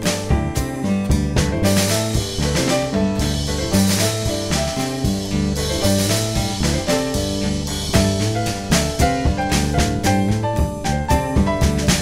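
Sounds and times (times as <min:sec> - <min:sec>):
drum kit: 0:00.0 - 0:12.0
instrumental jazz band: 0:00.0 - 0:12.0.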